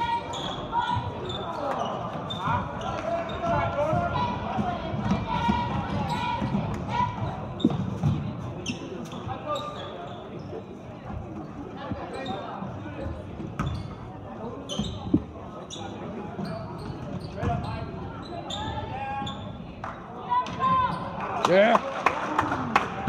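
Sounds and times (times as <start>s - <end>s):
sneaker squeaks: 0.0s - 4.4s, 5.0s - 19.8s
spectators chattering: 0.0s - 23.0s.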